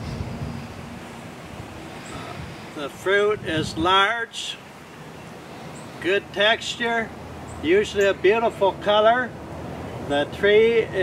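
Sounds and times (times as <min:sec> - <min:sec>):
wind rumble on microphone: 0:00.0 - 0:04.0.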